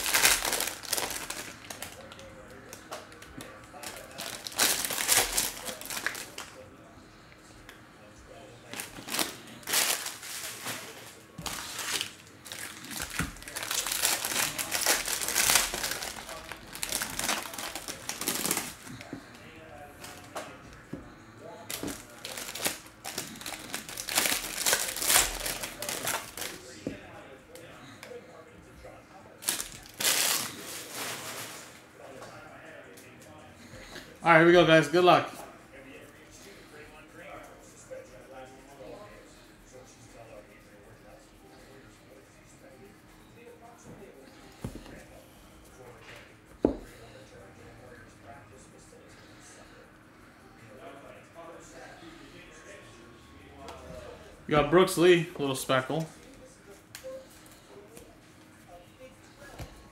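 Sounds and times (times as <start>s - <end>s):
card pack wrappers crinkling: 0.0s - 6.5s, 8.8s - 19.1s, 21.7s - 26.8s, 29.4s - 31.7s.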